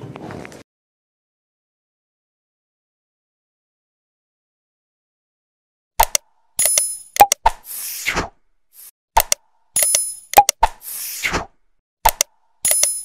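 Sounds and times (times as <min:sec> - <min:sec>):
mouse-click pops: 0:06.0 - 0:07.6, 0:09.2 - 0:11.4, 0:12.0 - 0:13.0.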